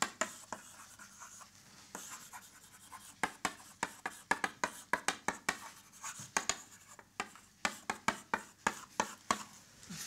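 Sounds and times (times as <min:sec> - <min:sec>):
chalk tapping on blackboard: 0:00.0 - 0:09.6
chalk scratching on blackboard: 0:00.0 - 0:10.0.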